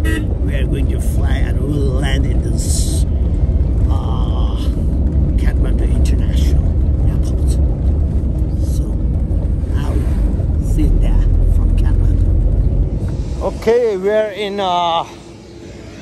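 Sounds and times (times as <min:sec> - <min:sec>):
people talking: 0:00.0 - 0:03.0, 0:03.9 - 0:07.6, 0:08.6 - 0:09.0, 0:09.7 - 0:12.2, 0:13.4 - 0:15.2
bus engine and road rumble: 0:00.0 - 0:16.0.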